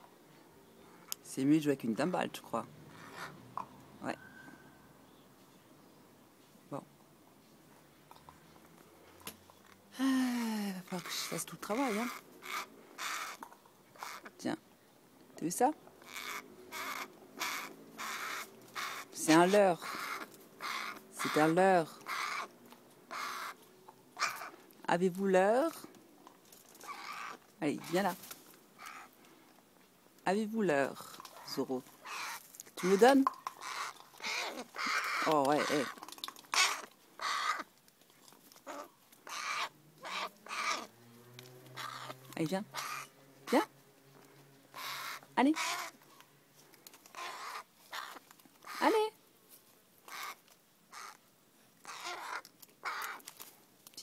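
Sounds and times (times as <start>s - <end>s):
crow cawing: 11.0s - 13.4s, 14.0s - 14.3s, 16.0s - 19.2s, 19.8s - 22.5s, 23.1s - 23.6s, 24.2s - 24.6s, 26.8s - 27.4s, 28.8s - 29.1s, 32.0s - 37.7s, 38.7s - 40.9s, 41.7s - 43.1s, 44.7s - 46.0s, 47.1s - 48.9s, 50.1s - 51.2s, 51.8s - 53.2s.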